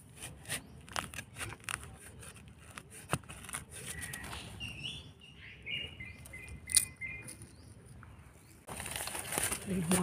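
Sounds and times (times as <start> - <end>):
hand rustling through soil and leaves: 8.7 - 10.0.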